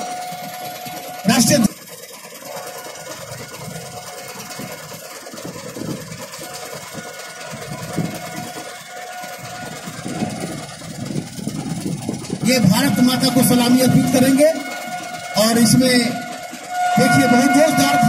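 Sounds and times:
fire engine idling: 0.0s - 18.0s.

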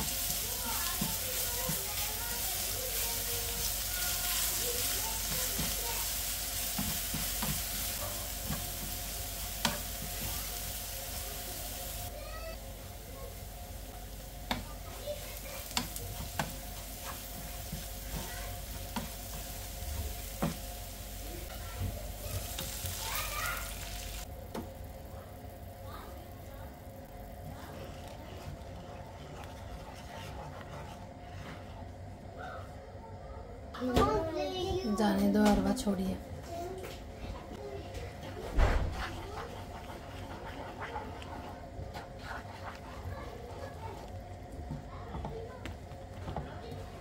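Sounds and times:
oil sizzling in a pan: 0.0s - 30.4s
wooden spatula knocking on pan: 5.2s - 6.0s, 6.6s - 9.0s, 9.6s - 10.4s, 14.4s - 14.7s, 15.6s - 19.5s, 20.3s - 20.7s.

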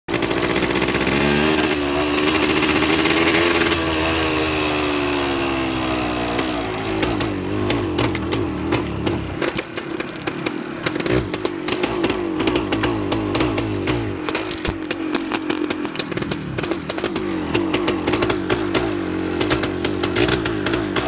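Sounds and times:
engine popping irregularly: 0.1s - 4.2s, 5.6s - 21.0s
two-stroke motorcycle engine revving: 0.1s - 21.0s.

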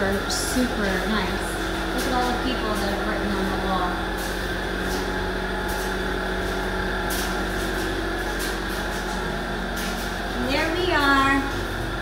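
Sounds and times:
clothes dryer humming: 0.0s - 12.0s.

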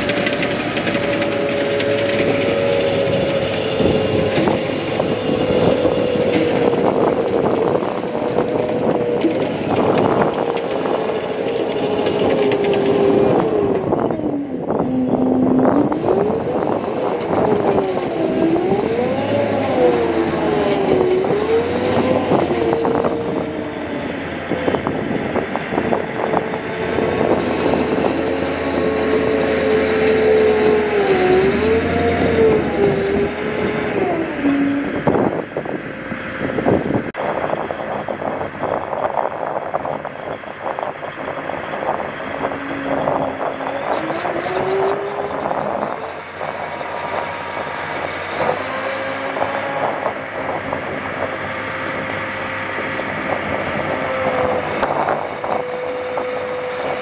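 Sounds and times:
tracked vehicle engine running: 0.0s - 57.0s
wavering whine: 0.0s - 57.0s.

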